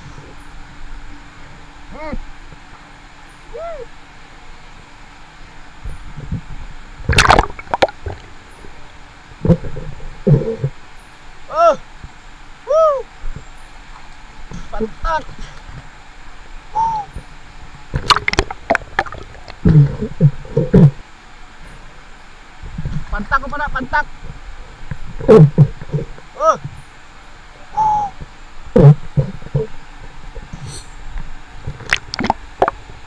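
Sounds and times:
person hooting: 0:03.5 - 0:03.9, 0:12.7 - 0:13.1, 0:16.8 - 0:17.1, 0:27.7 - 0:28.2
sea surface noise: 0:06.2 - 0:10.9, 0:16.7 - 0:21.0, 0:24.1 - 0:33.0
person breathing: 0:30.5 - 0:30.9.

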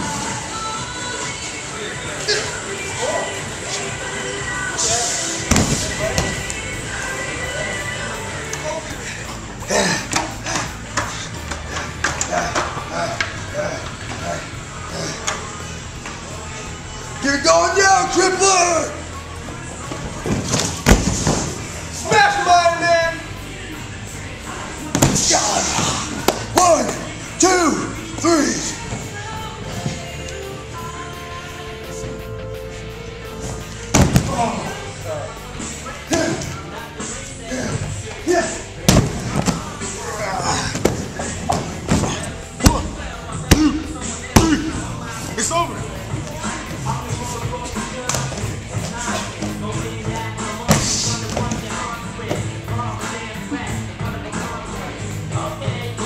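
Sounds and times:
music: 0:00.0 - 0:56.0
body thudding on crash mat: 0:05.5 - 0:06.4, 0:20.2 - 0:21.6, 0:33.9 - 0:34.6, 0:38.8 - 0:39.7
body thudding on padded mat: 0:05.5 - 0:06.4, 0:33.9 - 0:34.5.

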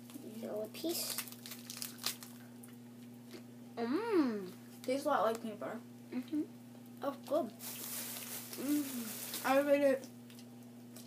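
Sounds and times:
faint low hum: 0:00.0 - 0:11.0
plastic wrapper crinkling: 0:00.8 - 0:02.4, 0:07.6 - 0:10.5.

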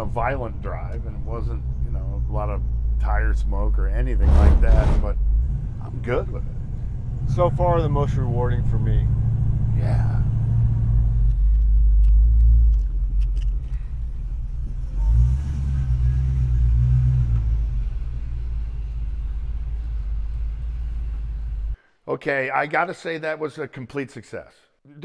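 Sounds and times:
car engine rumbling: 0:00.0 - 0:21.8.

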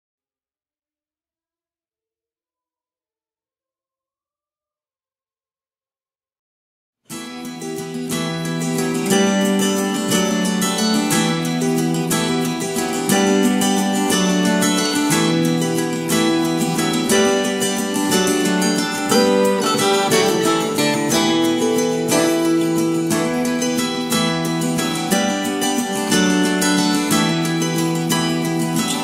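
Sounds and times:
acoustic guitar strummed and plucked: 0:07.1 - 0:29.0.

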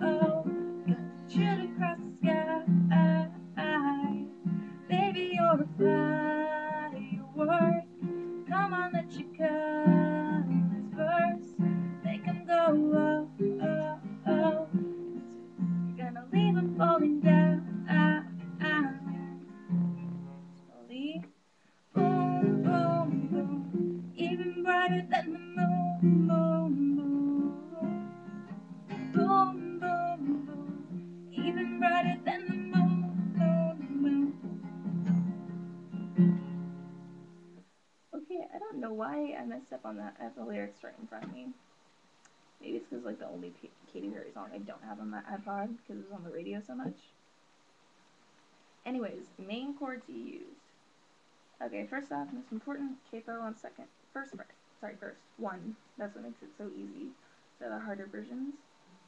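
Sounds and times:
woman singing: 0:00.0 - 0:15.3, 0:16.0 - 0:19.5, 0:20.9 - 0:21.3, 0:21.9 - 0:34.7
acoustic guitar strumming: 0:00.0 - 0:21.3, 0:21.9 - 0:37.6.

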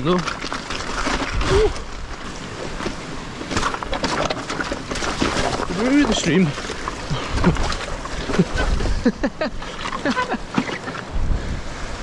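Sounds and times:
bike tyres clattering over stones: 0:00.0 - 0:08.8
tyres through shallow water: 0:00.0 - 0:12.0
wind rumble on microphone: 0:01.2 - 0:03.3, 0:07.1 - 0:12.0.

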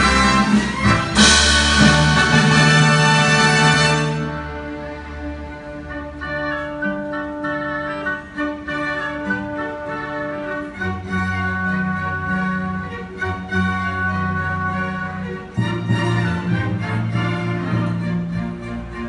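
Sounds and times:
orchestra playing: 0:00.0 - 0:19.0.

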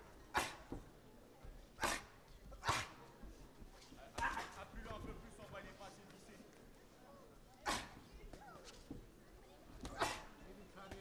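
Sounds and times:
low background murmur: 0:00.0 - 0:11.0.

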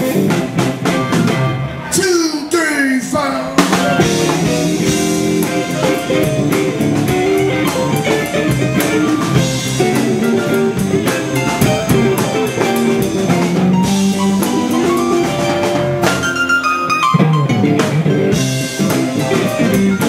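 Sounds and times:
drum kit steady beat: 0:00.0 - 0:02.4, 0:03.0 - 0:20.0
electric guitars: 0:00.0 - 0:20.0.

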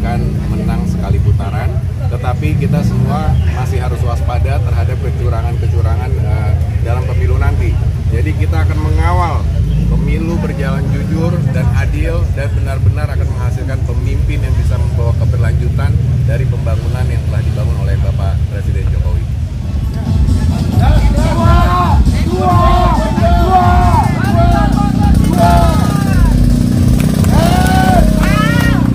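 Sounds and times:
man speaking: 0:00.0 - 0:19.4, 0:20.2 - 0:26.4
motorcycle engine idling: 0:19.8 - 0:28.9.

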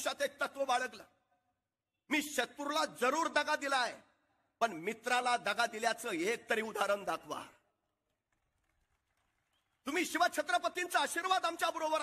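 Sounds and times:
man speaking: 0:02.0 - 0:07.6.

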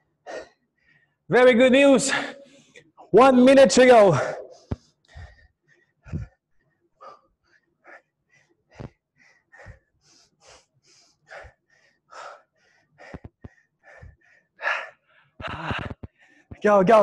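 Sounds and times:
man panting: 0:00.2 - 0:01.0, 0:04.2 - 0:06.4, 0:07.0 - 0:16.6.

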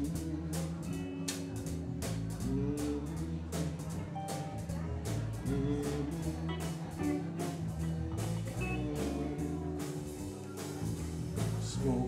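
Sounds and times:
bass line: 0:00.0 - 0:12.0
drums keeping a steady beat: 0:00.0 - 0:12.0
electric guitars: 0:00.0 - 0:12.0.

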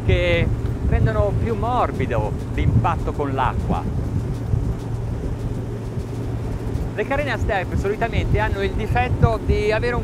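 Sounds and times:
outboard engines droning: 0:00.0 - 0:10.0
wind: 0:00.0 - 0:10.0.

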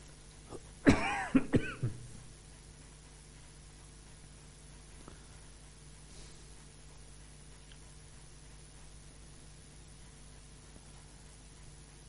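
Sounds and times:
person coughing: 0:00.5 - 0:02.1.

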